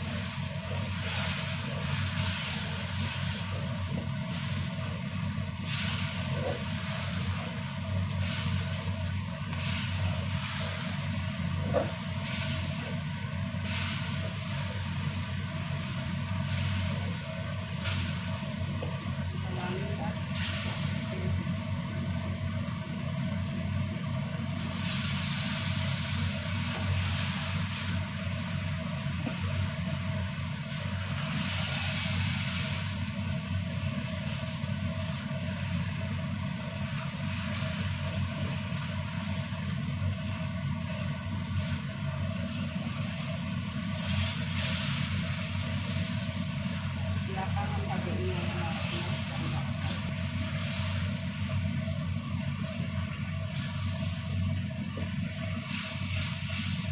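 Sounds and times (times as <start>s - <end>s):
food sizzling in a wok: 0.0s - 56.9s
steady low hum: 0.0s - 56.9s.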